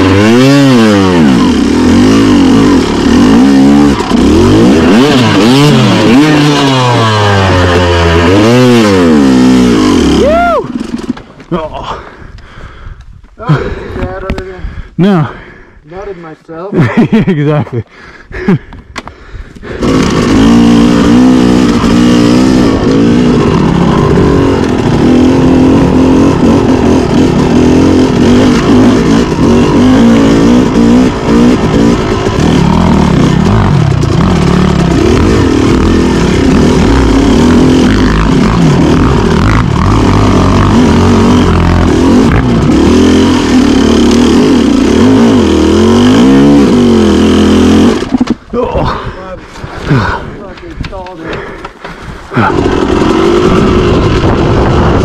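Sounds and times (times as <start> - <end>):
dirt bike engine revving: 0.0 - 11.3, 19.6 - 51.6, 52.2 - 55.0.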